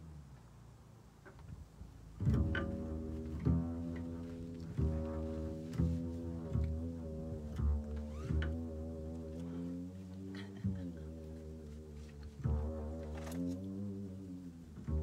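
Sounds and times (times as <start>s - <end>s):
double bass low notes: 0.0s - 15.0s.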